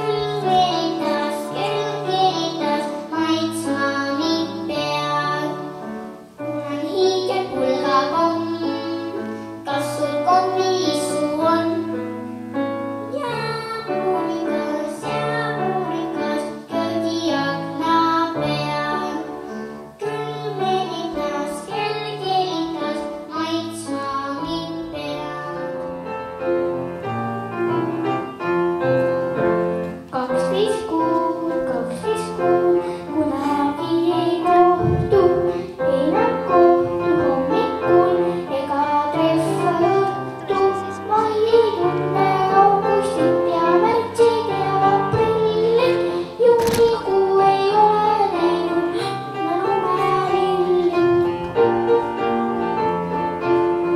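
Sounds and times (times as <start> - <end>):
girl singing into microphone: 0.0 - 26.5, 29.7 - 52.8
instrumental backing track: 0.0 - 53.9.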